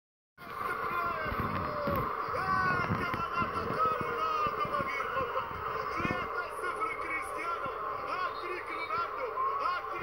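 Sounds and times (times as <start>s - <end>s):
excited commentator voice: 0.4s - 10.0s
stadium crowd noise: 0.4s - 10.0s.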